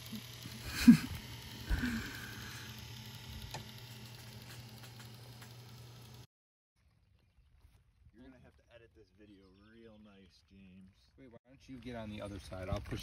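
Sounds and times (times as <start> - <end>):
small motors pumping water: 0.0 - 6.3.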